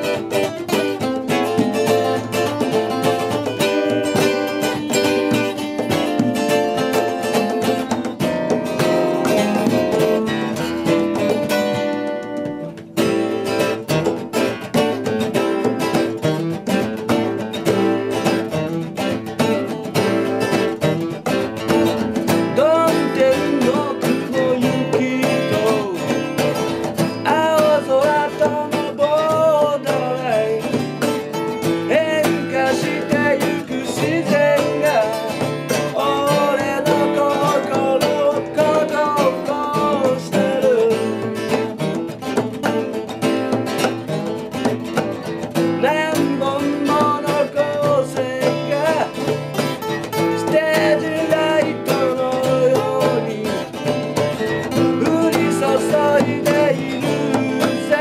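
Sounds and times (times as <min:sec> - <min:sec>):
man singing: 0:00.0 - 0:16.0, 0:16.8 - 0:43.9, 0:44.5 - 0:58.0
strummed acoustic guitar: 0:00.0 - 0:58.0.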